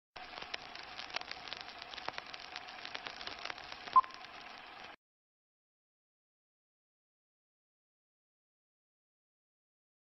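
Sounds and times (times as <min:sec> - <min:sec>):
old film crackle and clicks: 0:00.2 - 0:05.0.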